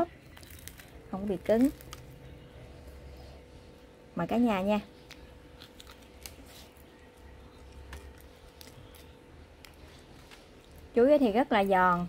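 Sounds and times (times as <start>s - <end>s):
crispy fritter being chewed: 0.1s - 3.0s, 5.0s - 11.0s.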